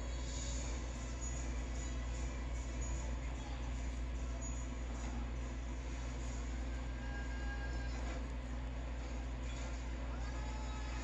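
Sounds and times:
ceiling fan humming: 0.0 - 11.0
faint television soundtrack: 0.0 - 11.0.

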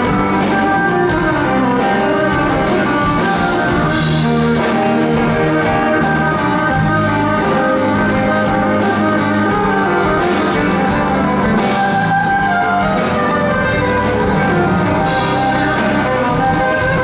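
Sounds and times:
drums beat: 0.0 - 17.0
electric bass: 0.0 - 17.0
violin held notes: 0.0 - 17.0.

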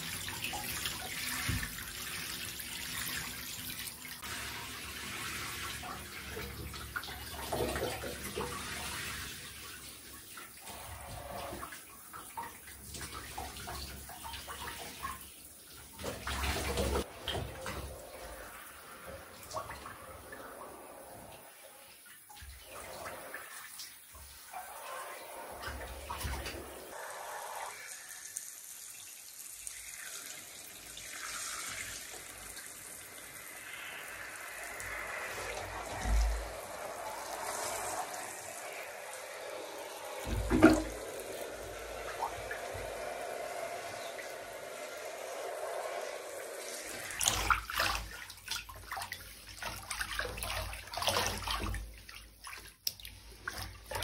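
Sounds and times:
shower water spraying on clothes: 0.0 - 54.0.

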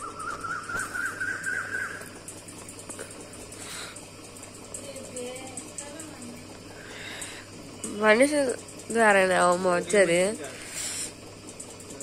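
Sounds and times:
high warbling whistle: 0.0 - 2.1.

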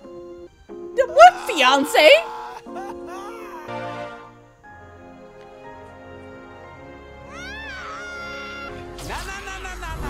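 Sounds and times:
music with held notes: 0.0 - 10.0
high sliding wail: 1.0 - 4.2.

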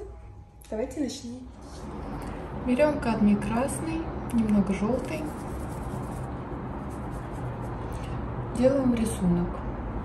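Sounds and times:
low background hum and hiss: 0.0 - 10.0.

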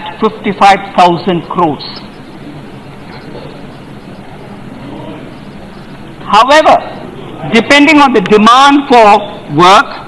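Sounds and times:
chamber murmur and hum: 0.0 - 10.0
faint indistinct voices: 1.9 - 7.8.

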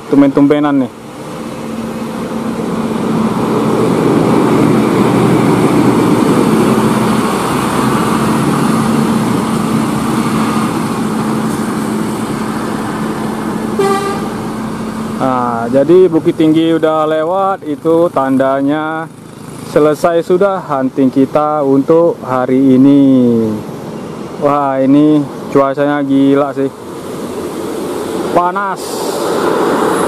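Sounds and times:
bus diesel engine passing: 0.0 - 30.0
motorbikes: 0.0 - 30.0
road noise: 0.0 - 30.0
horn toot: 13.7 - 14.4.

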